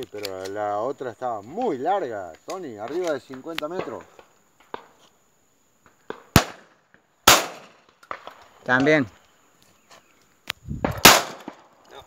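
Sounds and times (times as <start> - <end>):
shotgun shots with echo: 6.1 - 7.8, 11.0 - 11.7.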